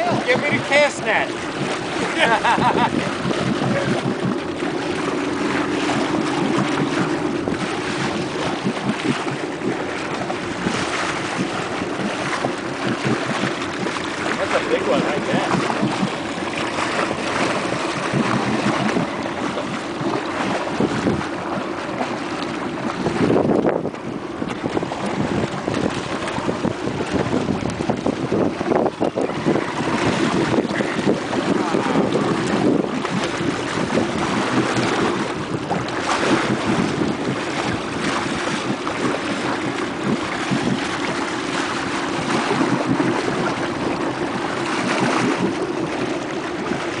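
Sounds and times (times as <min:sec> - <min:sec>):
boat motor running: 0:00.0 - 0:47.0
water splashing and lapping: 0:00.0 - 0:47.0
wind buffeting microphone: 0:00.0 - 0:47.0.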